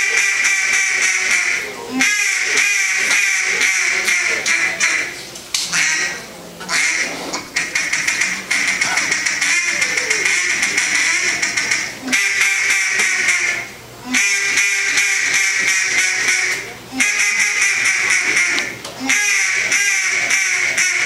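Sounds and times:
duck call quacks: 0.0s - 21.0s.

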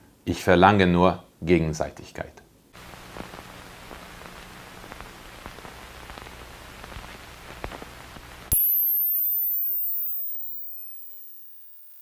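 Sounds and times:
crackling hissing static: 2.8s - 12.0s
low hum: 2.8s - 12.0s
faint falling whistle: 8.5s - 12.0s
loud high-pitched steady tone: 8.5s - 12.0s.

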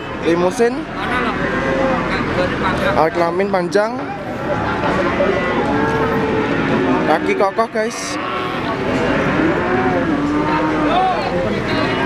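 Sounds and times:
crowd chatter: 0.0s - 12.0s
cow mooing: 1.3s - 2.3s, 4.9s - 12.0s.

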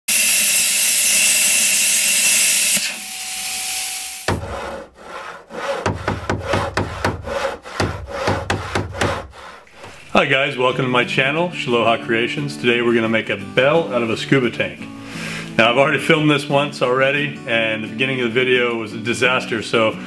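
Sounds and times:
plasma cutter hissing: 0.1s - 4.3s
rhythmic scraping strokes: 3.2s - 10.4s.

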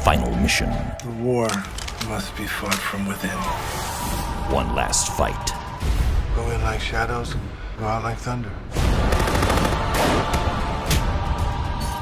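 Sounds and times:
dramatic trailer music: 0.0s - 12.0s
rapid gunfire: 8.9s - 10.4s.

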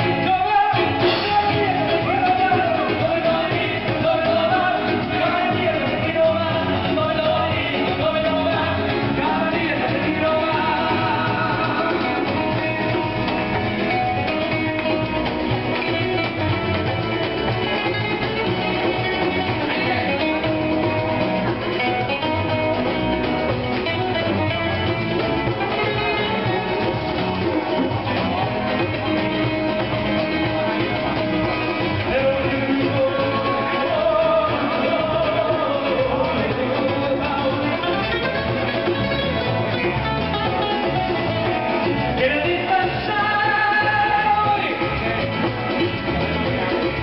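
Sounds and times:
acoustic guitars strummed: 0.0s - 47.0s
hand drums: 0.0s - 47.0s.

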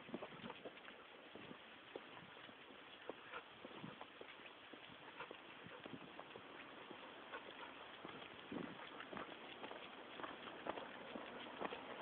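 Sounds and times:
footsteps on paving stones: 0.0s - 12.0s.

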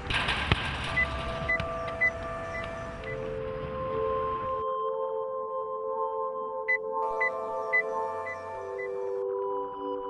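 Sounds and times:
held electronic tones: 6.7s - 9.0s.

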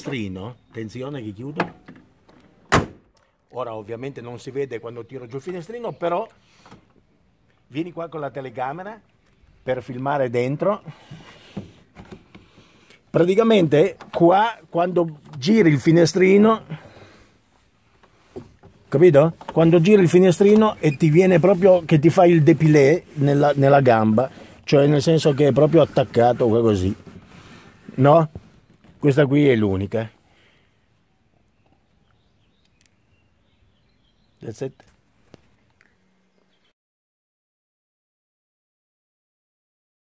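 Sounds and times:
light knocks and rustles: 17.9s - 22.0s.

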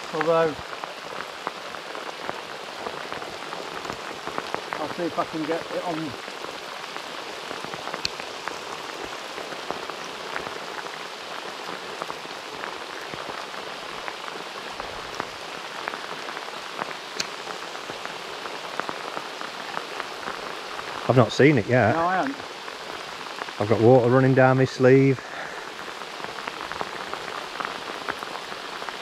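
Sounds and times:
heavy rain on river: 0.0s - 29.0s
raindrops ticking close by: 0.0s - 29.0s.

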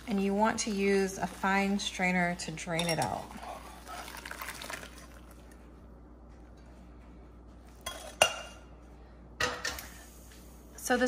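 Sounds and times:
liquid pouring through strainer: 3.3s - 5.6s.

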